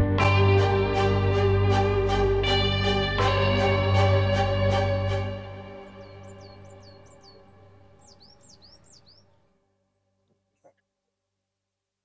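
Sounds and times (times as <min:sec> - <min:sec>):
background music: 0:00.0 - 0:09.3
birds chirping: 0:05.6 - 0:09.4.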